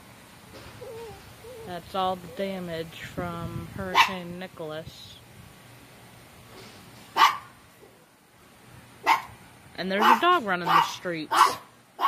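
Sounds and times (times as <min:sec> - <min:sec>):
dog barking: 0:03.9 - 0:04.2, 0:07.2 - 0:07.5, 0:09.0 - 0:09.3, 0:10.0 - 0:12.0.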